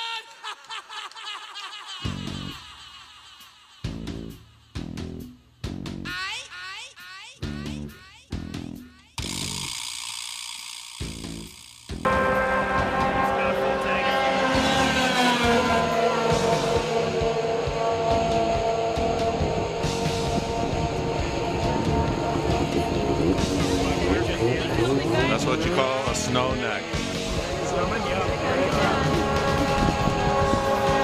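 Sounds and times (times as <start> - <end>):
guitar music: 12.0 - 31.0
snowmobile engine revving: 12.0 - 31.0.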